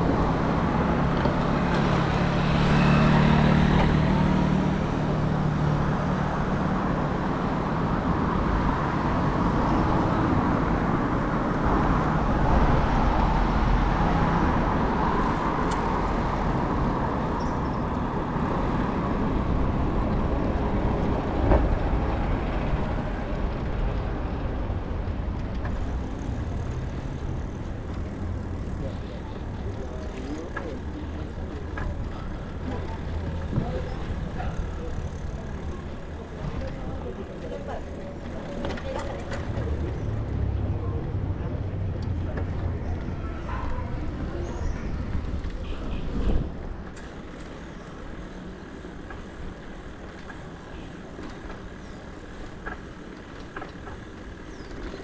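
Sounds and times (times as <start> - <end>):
road traffic rumble: 0.0 - 55.0.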